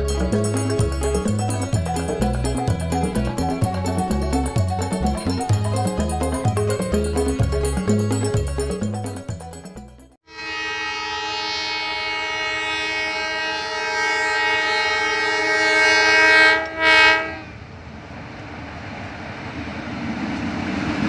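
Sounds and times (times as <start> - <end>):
locomotive air horn: 10.2 - 17.6
train rumbling: 10.5 - 21.0.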